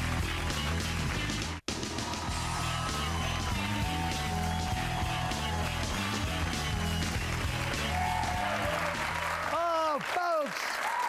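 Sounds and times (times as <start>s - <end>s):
audience applause: 0.0s - 11.0s.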